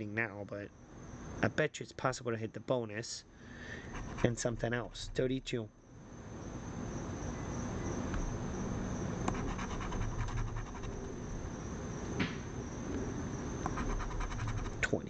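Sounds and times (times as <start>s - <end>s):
coin scratching lottery ticket: 3.9s - 5.2s, 9.3s - 11.1s, 13.7s - 14.9s.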